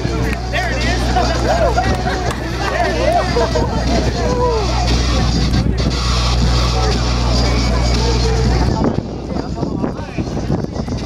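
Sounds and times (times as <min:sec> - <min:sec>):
crowd voices: 0:00.0 - 0:11.0
music: 0:00.0 - 0:11.0.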